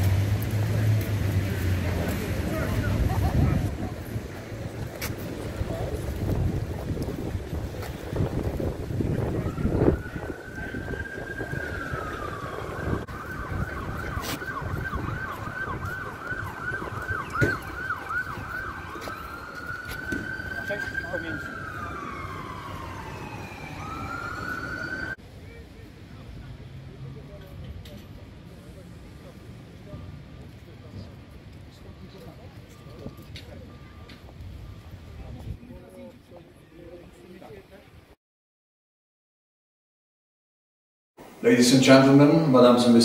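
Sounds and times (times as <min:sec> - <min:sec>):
wind rumble on microphone: 0:00.2 - 0:20.5, 0:32.8 - 0:36.0
emergency siren wailing: 0:05.4 - 0:25.2, 0:31.9 - 0:35.3.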